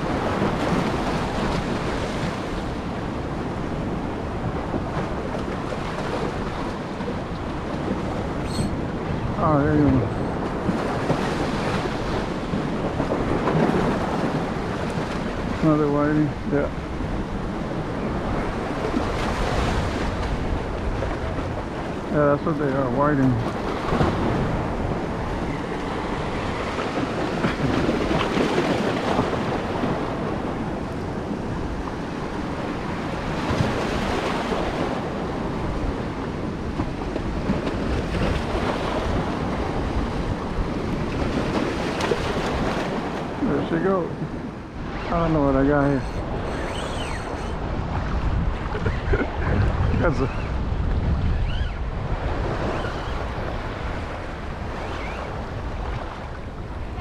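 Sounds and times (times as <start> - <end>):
surf washing along shore: 0.0 - 57.0
wind buffeting microphone: 0.0 - 57.0.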